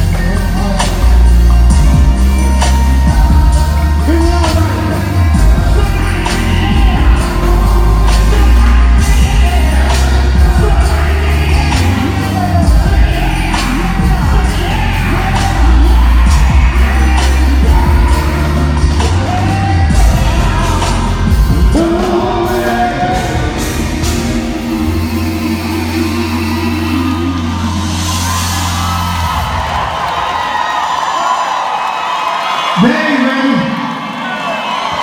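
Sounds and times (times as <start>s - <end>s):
men singing: 0.0s - 28.4s
heavy bass and drums: 0.0s - 29.6s
live band playing: 0.0s - 31.0s.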